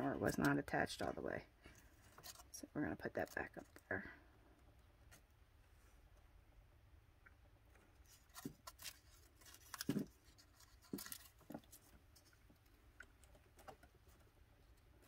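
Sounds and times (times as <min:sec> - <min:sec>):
light clicks and scrapes of handling: 0:01.6 - 0:03.9, 0:07.6 - 0:15.0.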